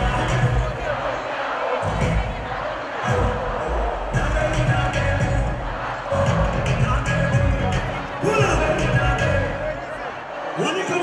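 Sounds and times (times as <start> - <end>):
music with heavy bass beat: 0.0 - 1.2, 1.8 - 10.0
large crowd noise: 0.0 - 11.0.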